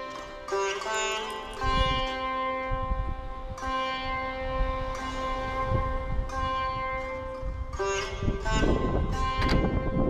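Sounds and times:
peaceful instrumental music: 0.0 - 10.0.

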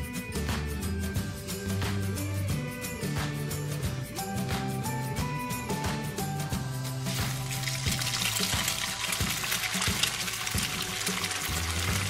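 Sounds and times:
background music: 0.0 - 12.0
frying sizzle: 6.5 - 12.0.

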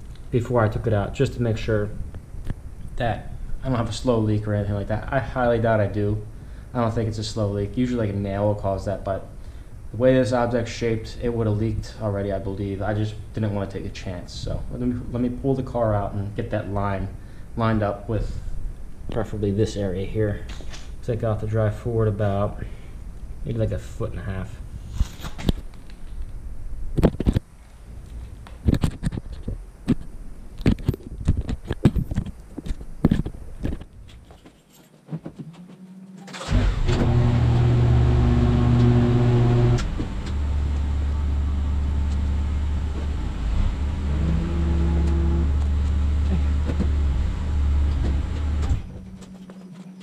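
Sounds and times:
footsteps: 31.3 - 36.1
car engine idling: 36.3 - 49.3.

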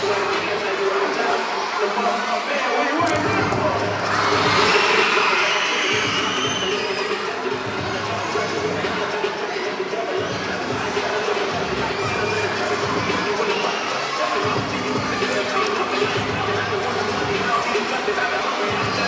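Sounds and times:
children cheering and shouting: 0.0 - 19.0
dance music: 0.0 - 19.0.

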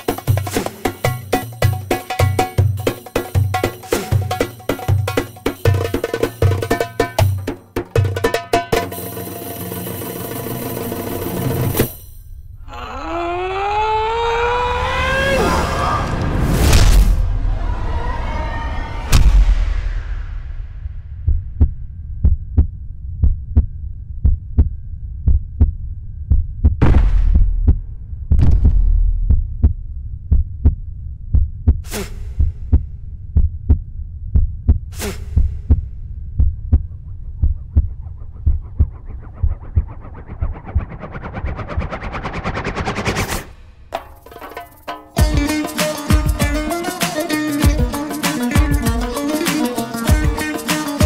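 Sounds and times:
fight scene film score: 9.1 - 44.2
loud impact hits: 19.0 - 21.8, 26.8 - 30.0
steady low beat: 19.6 - 41.1, 45.2 - 51.0.

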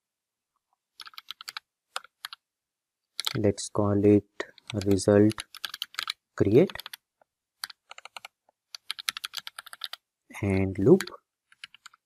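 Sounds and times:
typing on keyboard: 1.0 - 2.4, 3.2 - 3.4, 4.6 - 7.0, 7.6 - 10.0, 11.0 - 12.0.

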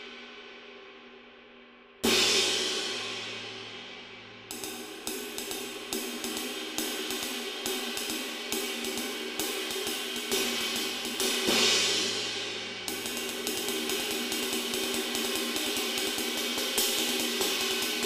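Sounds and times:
ride cymbal played with stick: 2.0 - 18.0.

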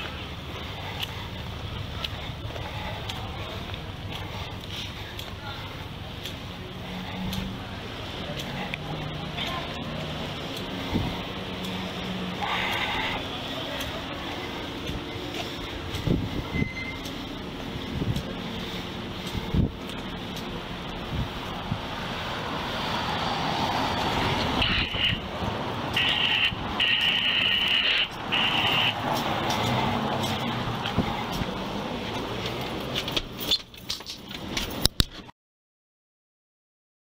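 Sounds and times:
vehicle passing: 0.0 - 34.9
traffic noise: 0.0 - 35.3
high steady tone: 8.7 - 21.4, 23.9 - 29.1.

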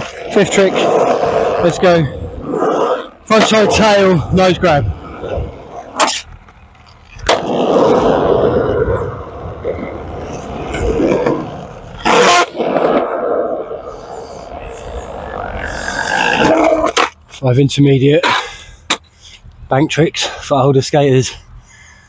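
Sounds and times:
skateboard wheels rolling on concrete: 0.0 - 19.1.

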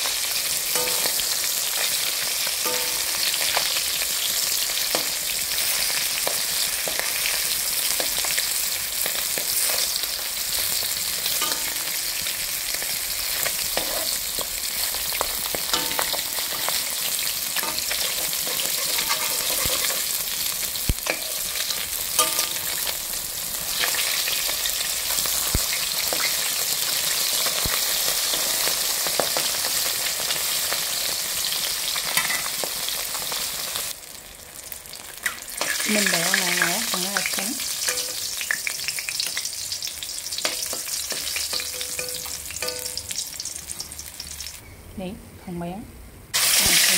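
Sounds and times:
fish sizzling in hot oil: 0.0 - 44.6, 46.4 - 46.9
spatula scraping metal pan: 15.7 - 20.3.

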